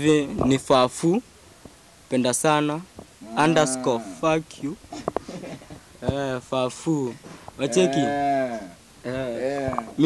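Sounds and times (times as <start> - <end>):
men's voices exclaiming: 3.2 - 6.4, 7.6 - 10.0.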